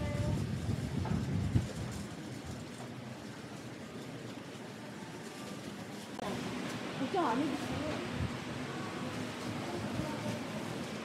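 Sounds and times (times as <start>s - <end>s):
market crowd hubbub: 0.0s - 11.0s.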